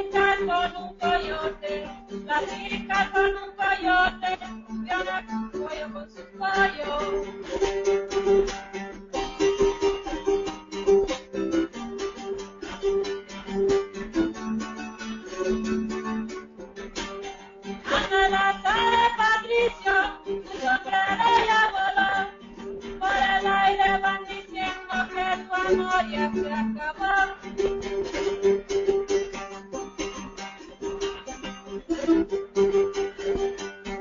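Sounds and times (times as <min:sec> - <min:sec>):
woman singing: 0:00.0 - 0:07.7, 0:17.8 - 0:27.8
acoustic guitar strummed: 0:00.0 - 0:34.0.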